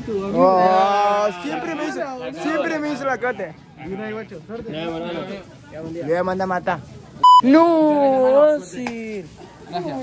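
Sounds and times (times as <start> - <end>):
censor bleep: 7.2 - 7.5.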